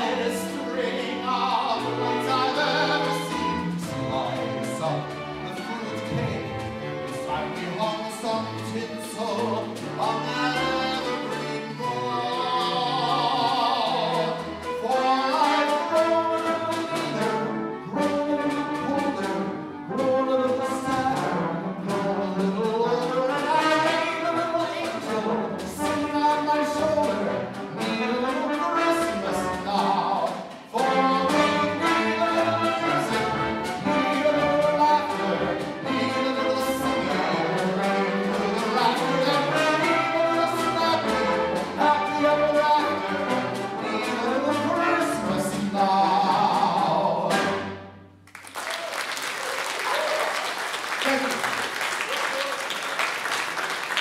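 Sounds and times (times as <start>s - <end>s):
symphony orchestra playing: 0.0s - 54.0s
audience applause: 48.2s - 54.0s.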